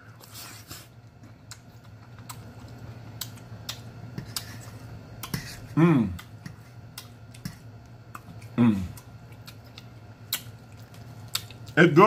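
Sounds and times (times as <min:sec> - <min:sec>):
person chewing food: 0:00.0 - 0:11.8.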